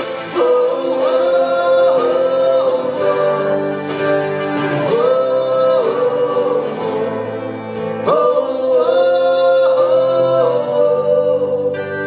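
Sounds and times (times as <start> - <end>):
two men singing together: 0.0 - 12.0.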